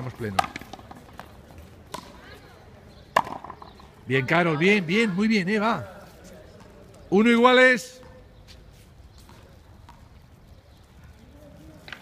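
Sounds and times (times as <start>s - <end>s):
ball striking racquet crack: 0.2s - 2.3s, 3.1s - 3.8s.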